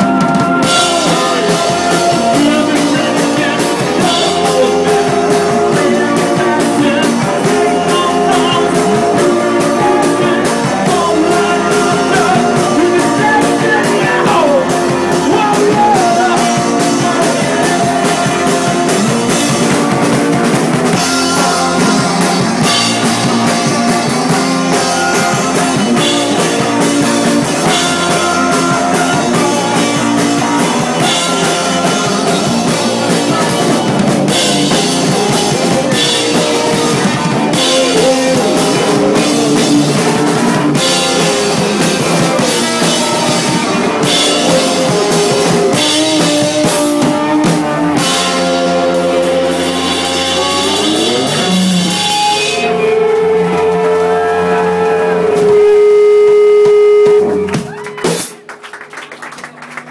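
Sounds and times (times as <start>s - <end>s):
live rock band: 0.0s - 59.9s.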